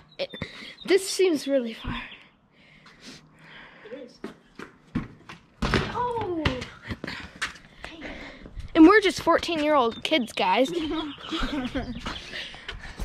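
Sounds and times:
basketball bouncing on concrete: 0:04.2 - 0:12.0.

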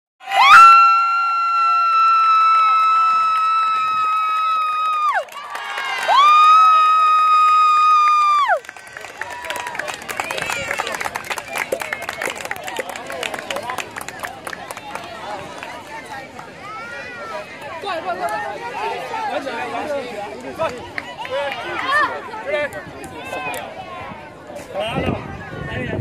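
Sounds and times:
crowd cheering: 0:00.2 - 0:24.2.

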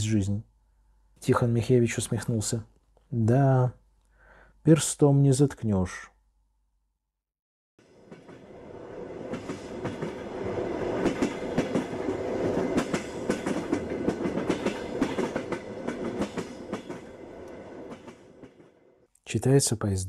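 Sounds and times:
train wheels clicking over rail joints: 0:09.2 - 0:18.8.

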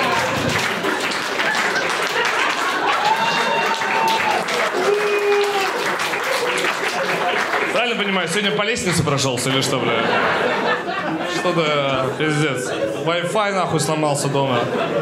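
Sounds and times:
audience applauding: 0:00.0 - 0:09.2
audience laughing: 0:00.0 - 0:15.0.

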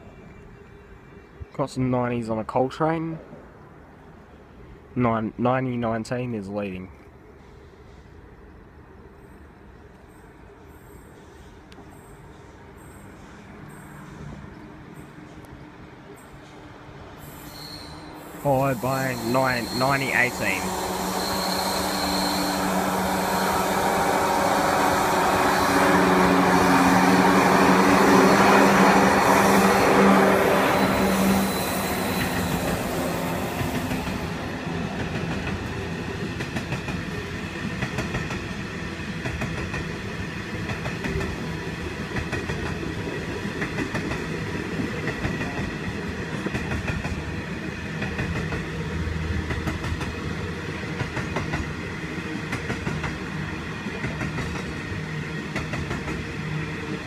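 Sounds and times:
diesel locomotive engine drone: 0:06.9 - 0:57.0
train wheels running on rails: 0:10.0 - 0:57.0.

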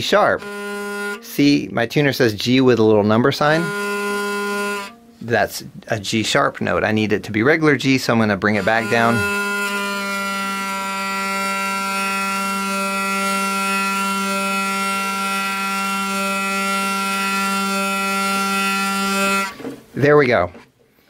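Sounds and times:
hurdy-gurdy string drone: 0:00.0 - 0:01.7, 0:02.5 - 0:05.3, 0:08.2 - 0:19.6.

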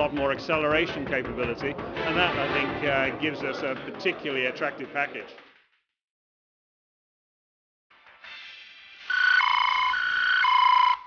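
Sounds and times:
two-tone electronic siren: 0:09.0 - 0:11.0.

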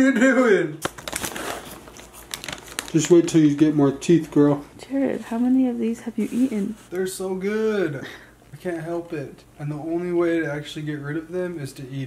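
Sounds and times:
plastic wrapper crinkling: 0:00.8 - 0:04.5.

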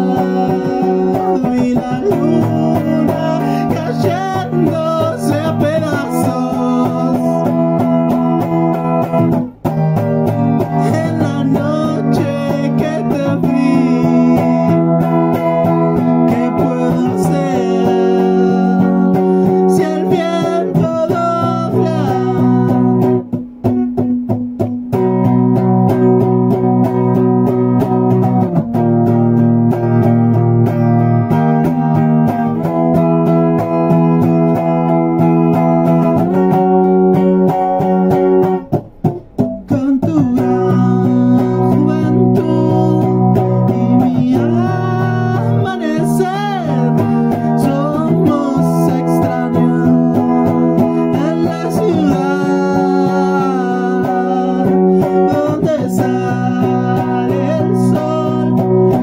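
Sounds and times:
guitar strumming chords: 0:00.0 - 0:59.0.

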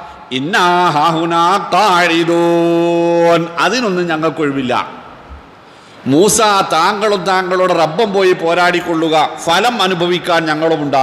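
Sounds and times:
man chanting melodic recitation: 0:00.3 - 0:05.0, 0:06.0 - 0:11.0.

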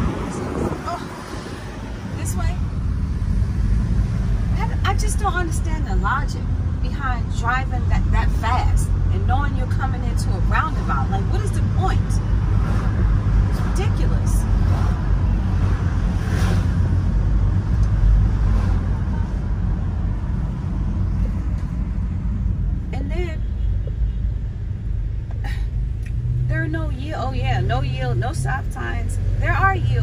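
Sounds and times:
car engine and road drone: 0:00.0 - 0:30.0.

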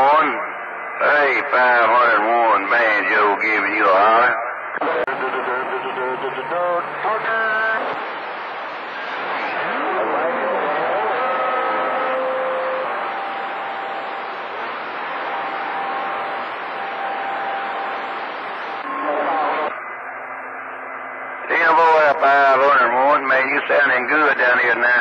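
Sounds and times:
garbled radio voice: 0:00.0 - 0:08.0, 0:21.5 - 0:25.0
radio static hiss: 0:00.0 - 0:25.0.

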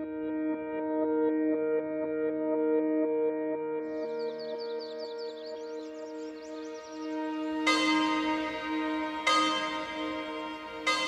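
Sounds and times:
ambient music drone: 0:00.0 - 0:11.0
large bell ringing: 0:06.5 - 0:11.0.

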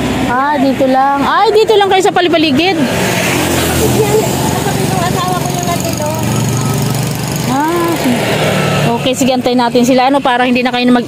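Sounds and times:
vehicle driving past: 0:00.0 - 0:11.0.

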